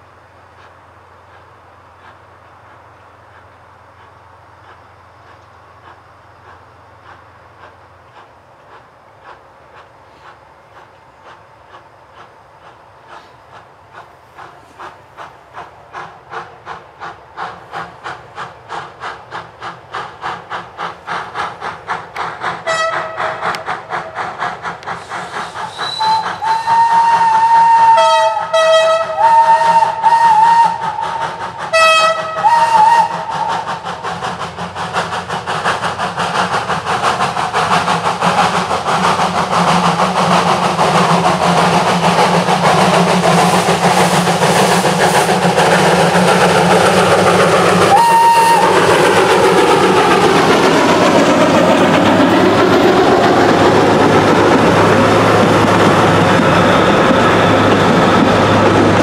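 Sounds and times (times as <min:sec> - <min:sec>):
train running noise: 0:00.0 - 0:59.0
train whistle blasts: 0:22.6 - 0:23.7, 0:25.0 - 0:33.7, 0:47.8 - 0:48.9.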